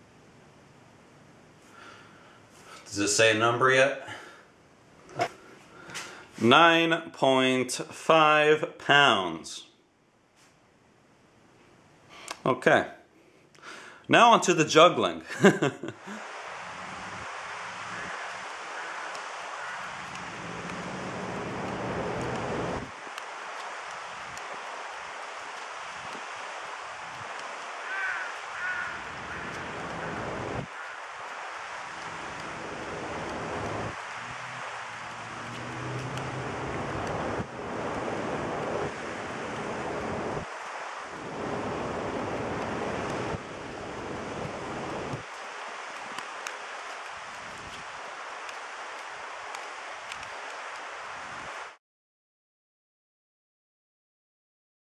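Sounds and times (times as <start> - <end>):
wind on microphone: 16.2 - 51.7.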